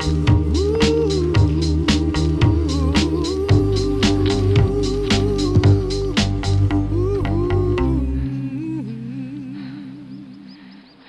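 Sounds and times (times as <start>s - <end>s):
background music beat and bass: 0.0s - 8.3s.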